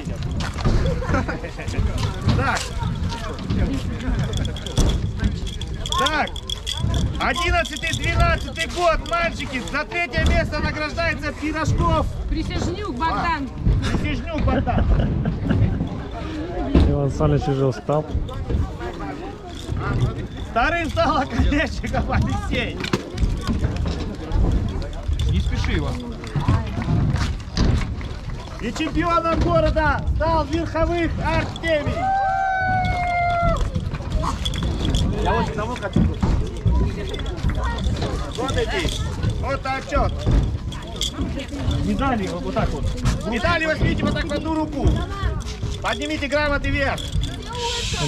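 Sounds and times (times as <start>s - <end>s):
children talking: 0.0s - 48.0s.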